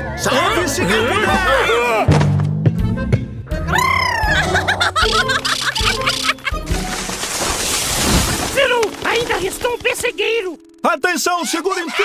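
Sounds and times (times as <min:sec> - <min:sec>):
cartoon background music: 0:00.0 - 0:07.2, 0:08.6 - 0:12.0
parrots chirping squawks: 0:05.0 - 0:06.4.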